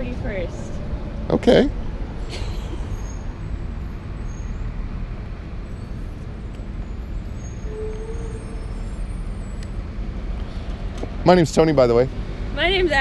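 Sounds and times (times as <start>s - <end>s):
low outdoor background rumble: 0.0s - 13.0s.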